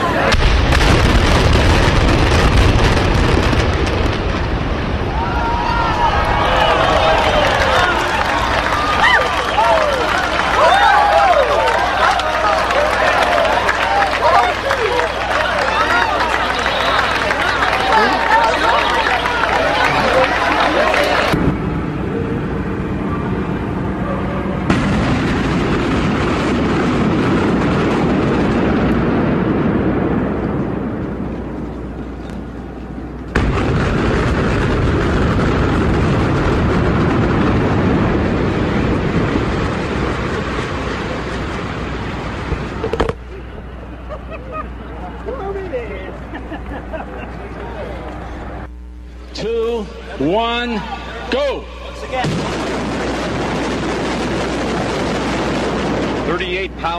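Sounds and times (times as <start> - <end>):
building collapsing rumble: 0.0 - 47.3, 51.0 - 56.9
explosive charges blasting: 0.2 - 8.5, 21.3 - 32.1, 33.3 - 43.7, 52.1 - 56.9.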